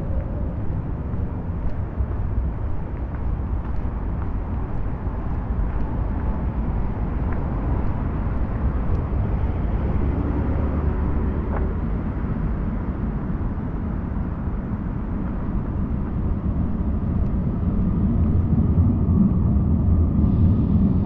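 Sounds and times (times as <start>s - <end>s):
city street rumble: 0.0s - 21.0s.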